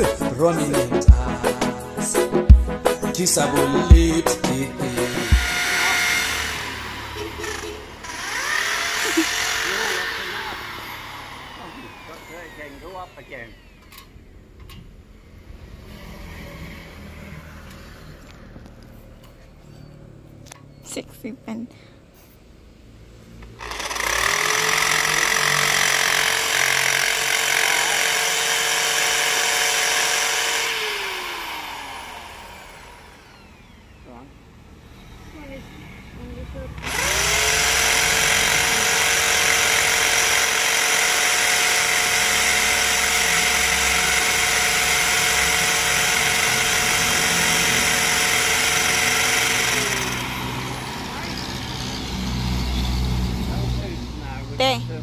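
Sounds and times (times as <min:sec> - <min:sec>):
electric drill boring into concrete: 0:03.1 - 0:14.3, 0:23.4 - 0:52.8.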